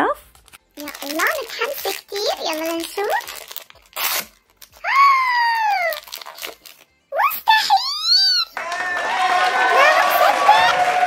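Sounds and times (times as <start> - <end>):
crowd cheering: 8.6 - 11.0.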